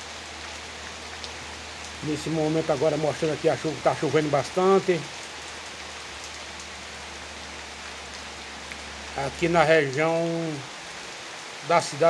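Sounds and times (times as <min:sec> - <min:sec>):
heavy rain on leaves: 0:00.0 - 0:12.0
single raindrops: 0:07.6 - 0:10.8.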